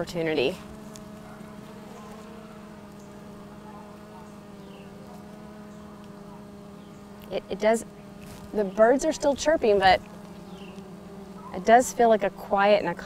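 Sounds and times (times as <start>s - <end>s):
bees humming: 0.0s - 13.0s
bird chirp: 0.8s - 7.2s, 7.9s - 11.7s.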